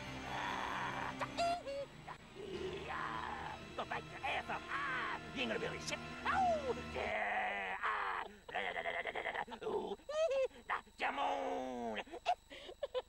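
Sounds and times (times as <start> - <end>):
woman laughing: 11.9 - 13.0.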